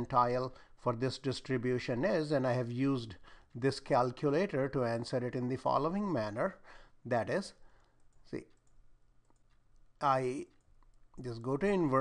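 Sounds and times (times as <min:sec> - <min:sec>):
faint mouse clicks: 0:07.8 - 0:11.3.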